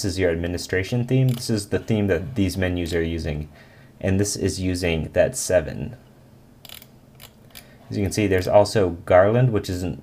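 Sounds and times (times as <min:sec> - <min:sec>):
mouse scroll wheel clicking: 0:06.6 - 0:07.7.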